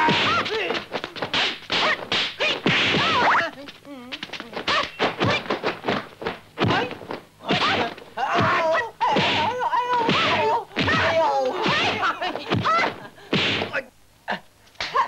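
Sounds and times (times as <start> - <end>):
fighters yelling and grunting: 0.0 - 0.9, 6.6 - 13.8
punch and slap sound effects: 0.0 - 3.5, 4.1 - 13.8.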